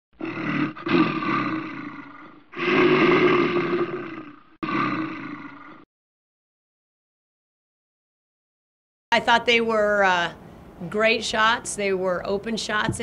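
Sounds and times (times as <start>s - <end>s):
animal roar: 0.2s - 5.9s.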